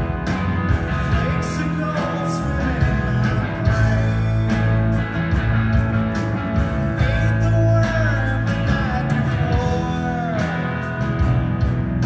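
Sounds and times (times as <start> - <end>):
rock band playing: 0.0 - 12.0.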